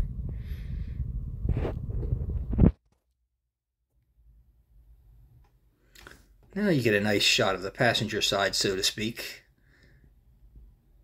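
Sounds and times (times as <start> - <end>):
microphone handling rumble: 0.0 - 2.8.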